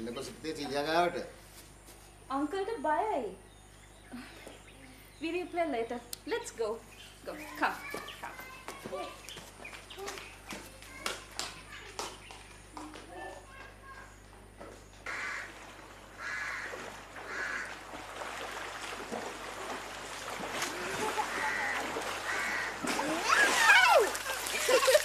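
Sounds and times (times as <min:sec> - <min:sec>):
harsh bird caws: 0:15.0 - 0:15.6, 0:16.2 - 0:17.8, 0:21.3 - 0:22.8
voices calling out: 0:20.7 - 0:25.0.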